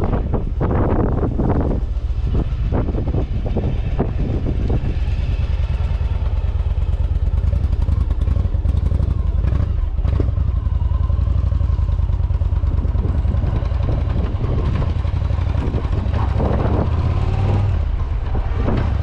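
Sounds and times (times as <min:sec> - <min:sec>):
motorcycle engine rumbling: 0:00.0 - 0:19.0.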